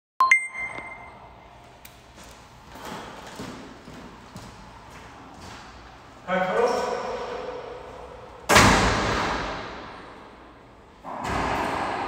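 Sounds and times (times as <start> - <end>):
footsteps on court floor: 2.1 - 5.8.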